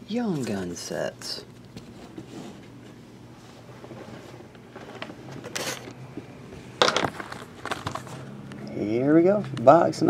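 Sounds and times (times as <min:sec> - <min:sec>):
shrink-wrapped boxes rustling: 0:07.0 - 0:08.3.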